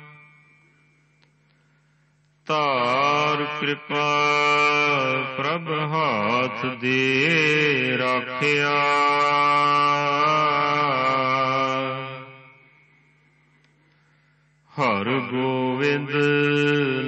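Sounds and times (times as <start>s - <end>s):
man chanting melodically: 0.0s - 0.9s, 2.4s - 12.9s, 14.7s - 17.0s.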